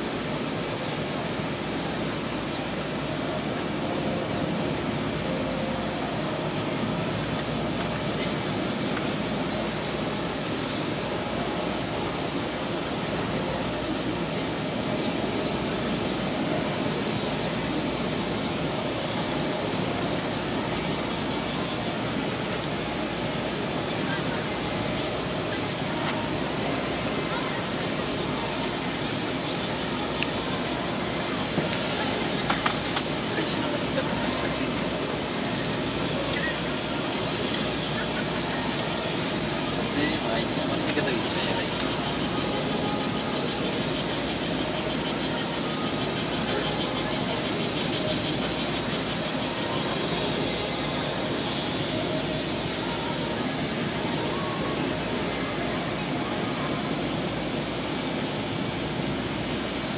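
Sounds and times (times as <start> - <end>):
murmur of voices: 0.0 - 59.9
steady outdoor hiss: 0.0 - 59.9.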